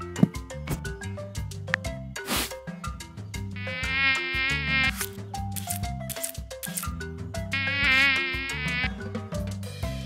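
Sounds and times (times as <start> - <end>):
light background music: 0.0 - 10.0
cartoon mosquito buzz: 3.6 - 5.1, 7.5 - 9.0.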